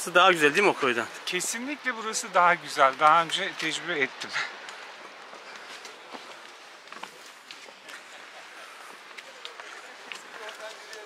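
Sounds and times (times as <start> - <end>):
footsteps on rocky trail: 0.3 - 11.0
trekking poles clicking on rock: 9.0 - 11.0.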